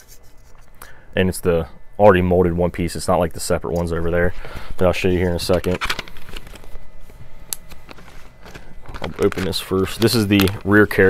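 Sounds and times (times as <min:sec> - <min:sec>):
plastic bag crinkling: 0:04.4 - 0:11.0.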